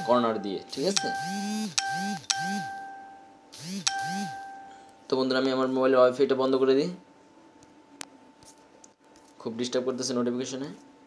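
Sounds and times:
phone notification chimes: 0:00.0 - 0:04.9.

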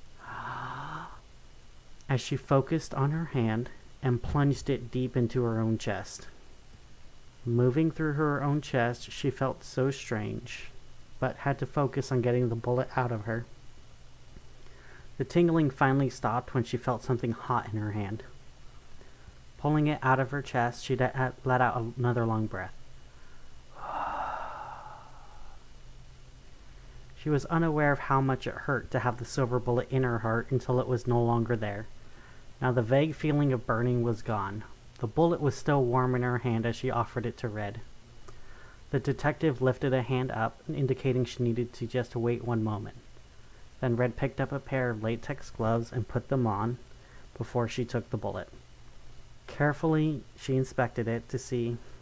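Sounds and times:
person breathing in deeply: 0:00.2 - 0:01.2, 0:23.1 - 0:25.7
person sighing: 0:00.2 - 0:01.2, 0:23.7 - 0:25.7.

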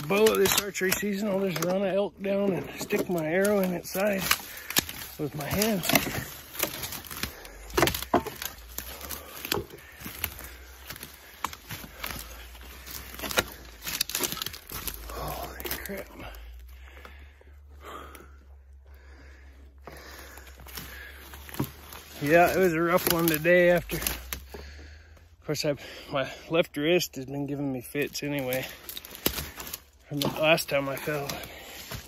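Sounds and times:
footsteps in undergrowth: 0:00.0 - 0:25.2, 0:27.7 - 0:32.0
heavy breathing: 0:02.4 - 0:26.6, 0:30.9 - 0:32.0.

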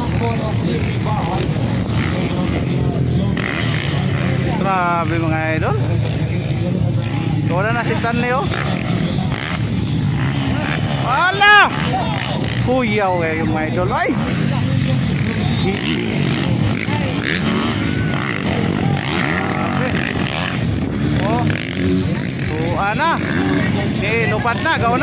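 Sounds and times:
dirt bike engines revving: 0:00.0 - 0:25.0.

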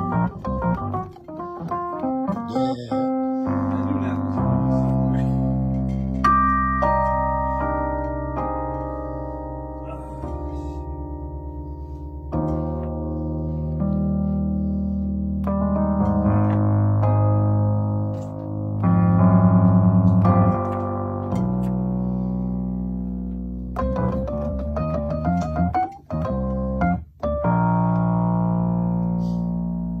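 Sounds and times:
electric piano chords: 0:00.0 - 0:30.0.

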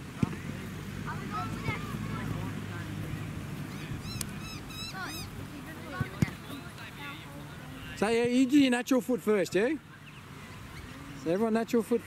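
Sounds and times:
birds chirping and squawking: 0:03.7 - 0:05.4.

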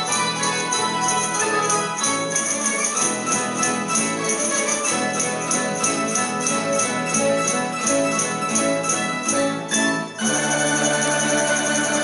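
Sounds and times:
plucked string orchestra playing: 0:00.0 - 0:12.0.

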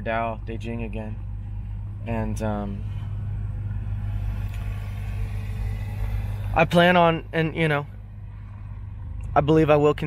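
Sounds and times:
constant hum: 0:00.0 - 0:10.0
low rumble: 0:00.4 - 0:10.0.

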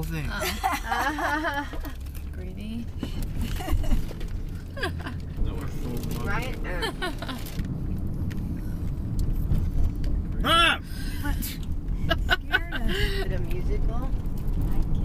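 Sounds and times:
road rumble inside moving car: 0:00.0 - 0:15.0
people laughing: 0:00.3 - 0:01.9.

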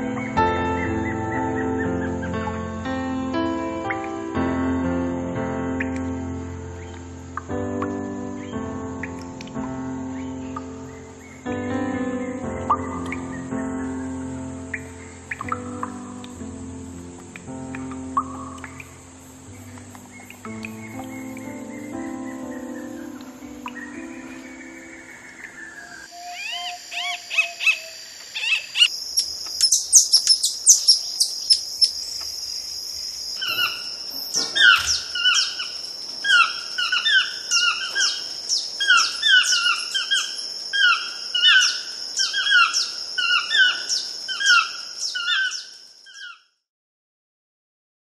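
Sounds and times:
high bird chirps: 0:19.6 - 0:32.3, 0:33.4 - 0:46.4
bird repeating falling call: 0:33.4 - 0:46.4.

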